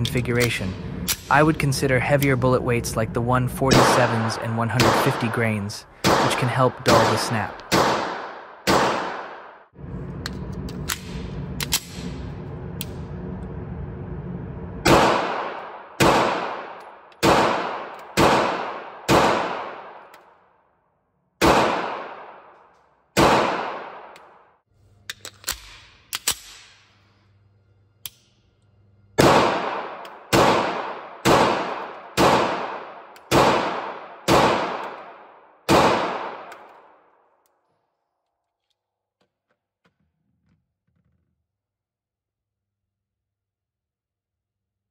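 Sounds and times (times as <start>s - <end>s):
pistol shots echoing: 3.7s - 9.6s, 14.9s - 20.1s, 21.4s - 22.6s, 23.2s - 24.4s, 29.2s - 37.0s.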